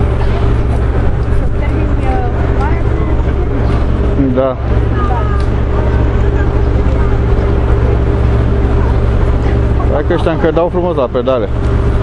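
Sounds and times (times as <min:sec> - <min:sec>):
faint voices of passers-by: 0:00.0 - 0:12.0
street traffic: 0:00.0 - 0:12.0
vehicle engine idling: 0:00.0 - 0:12.0.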